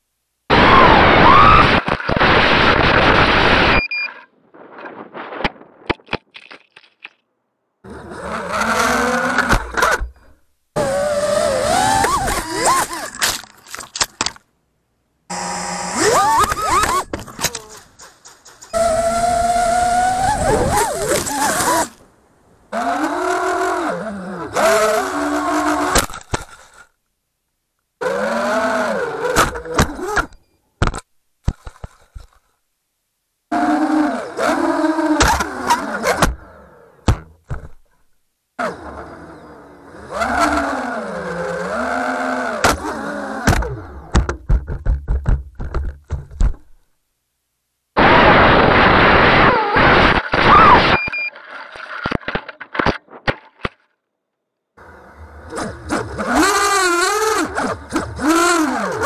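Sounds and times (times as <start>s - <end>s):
drone motors whining: 0.5s - 5.9s, 7.8s - 13.2s, 15.3s - 22.0s, 38.6s - 44.3s
sharp crack: 4.5s - 7.3s
quadcopter motors whining: 7.9s - 10.1s, 10.8s - 13.2s, 15.3s - 17.8s, 18.6s - 22.0s, 22.7s - 26.0s, 33.5s - 36.9s, 38.6s - 44.1s, 54.8s - 59.0s.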